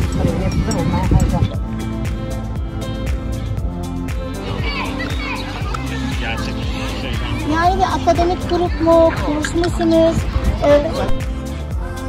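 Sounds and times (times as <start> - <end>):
background music with beat: 0.0 - 12.0
children calling and shrieking: 4.1 - 11.4.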